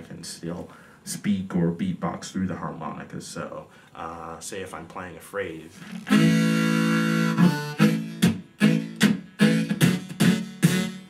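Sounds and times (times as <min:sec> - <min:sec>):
harmonica chords: 0:05.8 - 0:11.0.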